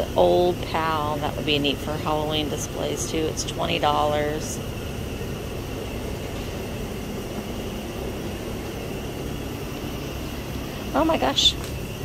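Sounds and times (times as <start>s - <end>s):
faint high whine: 0.0s - 12.0s
low rumble and hiss: 0.0s - 12.0s.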